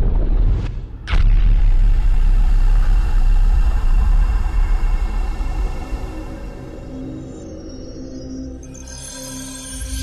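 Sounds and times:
low rumble: 0.0s - 6.9s.

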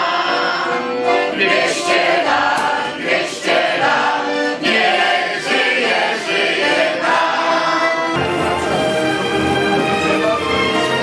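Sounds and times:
accordion playing: 0.0s - 11.0s
choir singing: 0.0s - 11.0s.

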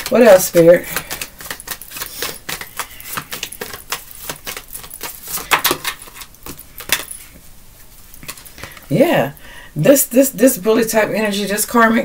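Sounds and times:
cards being shuffled: 0.0s - 7.2s, 8.2s - 8.9s.

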